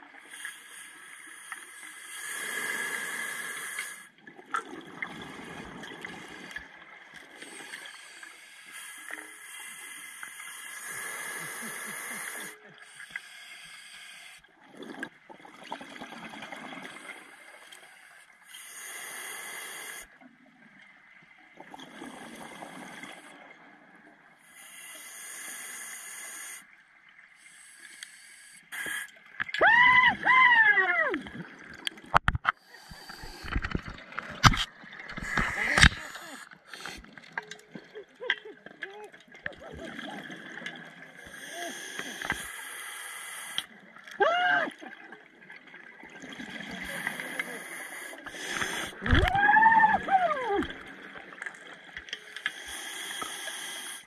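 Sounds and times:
regulator breathing underwater: 7.4 - 14.5, 32.5 - 37.2, 46.8 - 49.2, 52.2 - 54.0.

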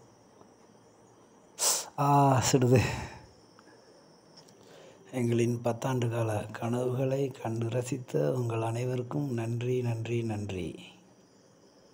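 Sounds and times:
faint high hum: 0.0 - 11.9.

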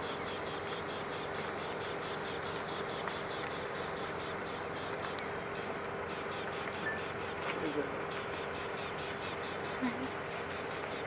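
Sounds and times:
faint low hum: 0.0 - 11.0
insects chorus pulsing: 0.0 - 11.0.

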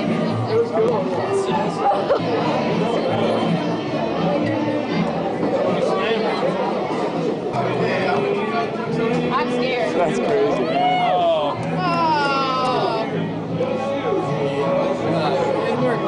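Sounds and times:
babble of voices: 0.0 - 16.0
music playing: 0.0 - 16.0.

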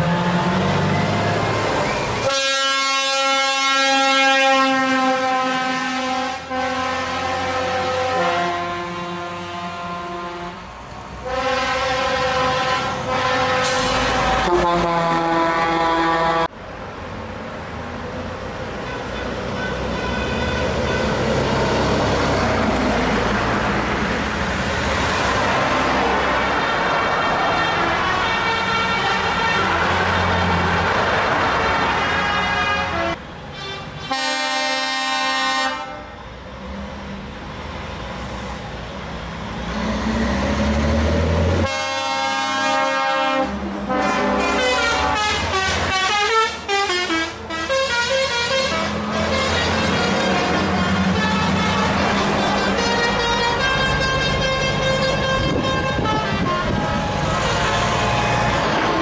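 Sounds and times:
diesel trucks driving past: 0.0 - 59.0
truck air horn blast: 2.2 - 16.5, 18.8 - 21.3, 26.4 - 30.6, 31.5 - 36.2, 41.6 - 59.0
horn tones sliding in pitch: 41.6 - 59.0.

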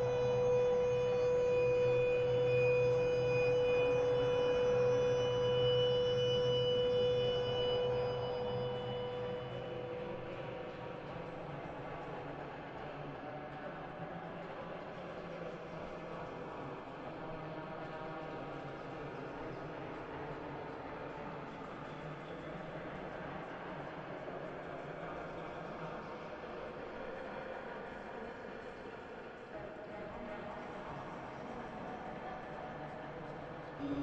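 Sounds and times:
faint sustained tones: 0.0 - 13.0, 33.8 - 34.0
noise-like ambient wash: 0.0 - 18.8, 30.2 - 34.0.

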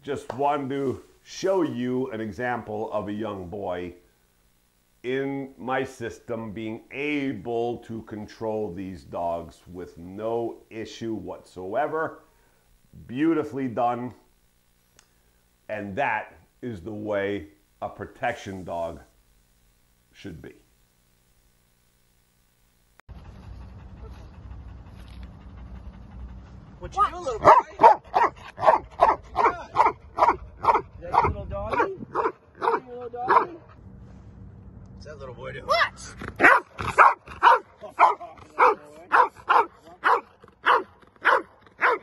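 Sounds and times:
steady low rumble: 23.1 - 27.4, 33.6 - 36.4
dog panting: 23.1 - 33.8, 36.4 - 42.0.

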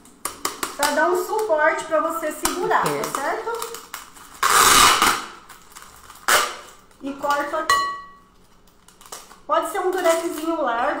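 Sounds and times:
adhesive tape ripping: 2.4 - 7.5.

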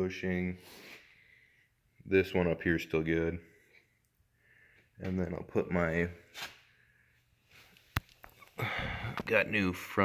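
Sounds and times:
man's voice: 9.1 - 10.0.

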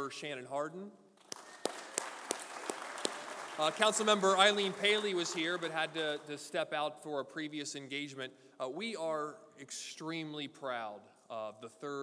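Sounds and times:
audience applauding: 1.2 - 6.4.

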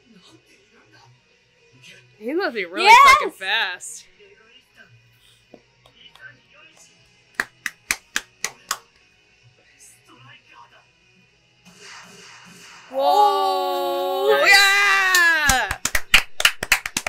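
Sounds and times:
quick hand claps: 6.1 - 8.9, 15.1 - 17.0.

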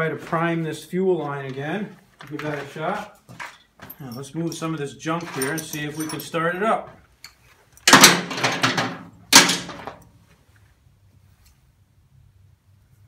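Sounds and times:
metal chains clattering: 3.4 - 6.6.

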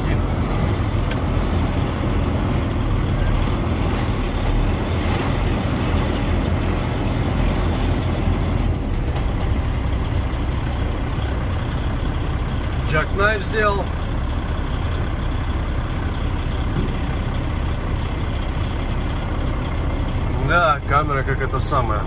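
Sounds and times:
diesel truck engine droning: 0.0 - 22.0.

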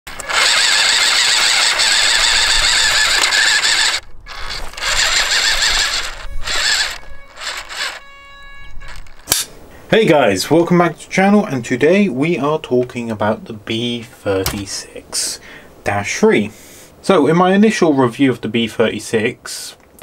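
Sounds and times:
electric motor and gearbox whine: 0.1 - 9.3
steady pitched hum: 0.1 - 12.2
sharp click: 8.8 - 9.6.

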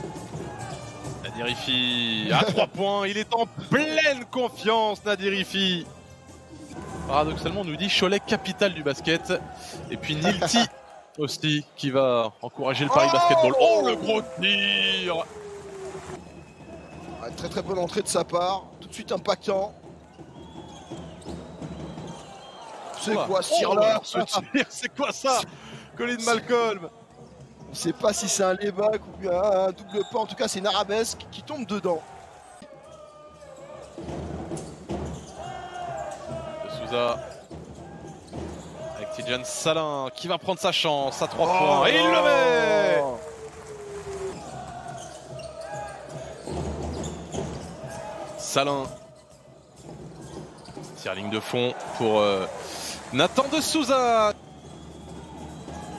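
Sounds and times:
music in the hall: 0.0 - 1.4
crowd noise: 6.8 - 55.9.

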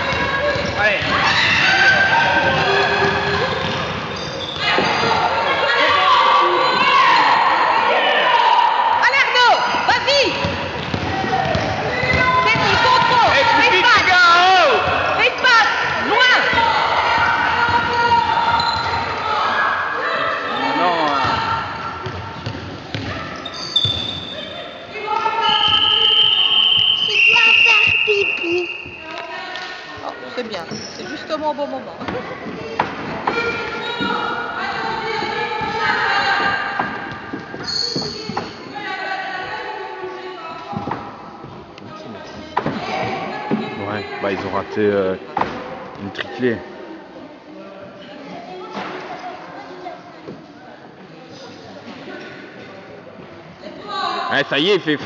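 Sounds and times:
sneakers squeaking: 0.0 - 5.9, 9.6 - 19.3, 20.3 - 29.4, 30.3 - 31.4, 32.0 - 38.9
children and spectators calling out: 4.6 - 10.4, 11.1 - 22.0
basketball bouncing on floor: 10.4 - 13.3
long high whistle: 25.5 - 29.1.

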